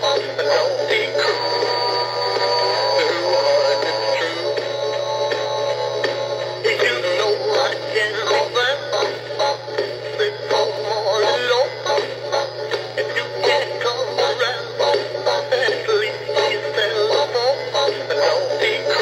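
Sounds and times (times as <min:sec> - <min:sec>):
toy fish singing through small speaker: 0:00.0 - 0:19.0.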